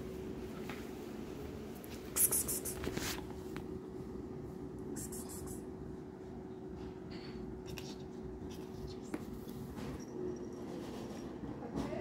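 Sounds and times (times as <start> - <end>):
faint steady hum: 0.0 - 12.0
cat pawing at shaggy rug: 1.9 - 3.7.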